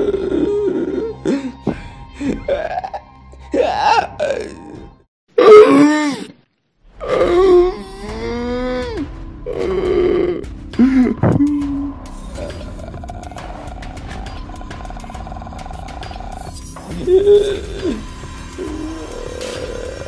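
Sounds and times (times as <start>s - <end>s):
eerie human moans: 0.0s - 6.3s, 7.0s - 20.0s.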